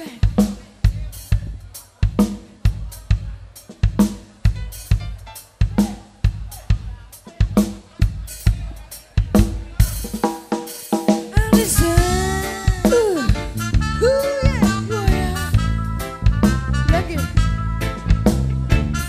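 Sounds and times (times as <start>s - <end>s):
acoustic drum kit groove: 0.0s - 19.0s
pitched band notes: 9.4s - 19.0s.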